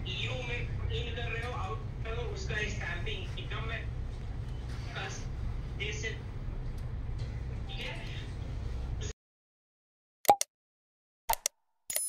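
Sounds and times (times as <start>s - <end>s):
pop and click effects: 10.3s - 10.5s.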